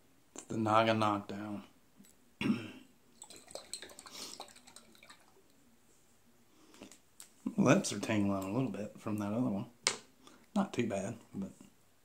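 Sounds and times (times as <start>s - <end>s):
wet liquid sounds: 3.2s - 5.6s.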